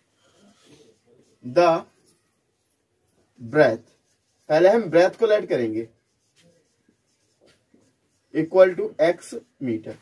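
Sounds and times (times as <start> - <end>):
marker writing on whiteboard: 0.0 - 10.0.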